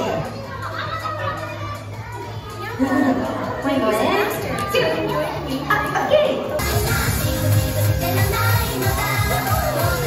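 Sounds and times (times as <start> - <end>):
faint background music: 0.0 - 10.0
room chatter: 0.0 - 10.0.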